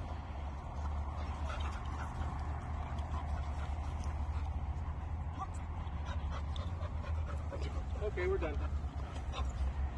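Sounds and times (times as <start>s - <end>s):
dog panting: 0.8s - 9.8s.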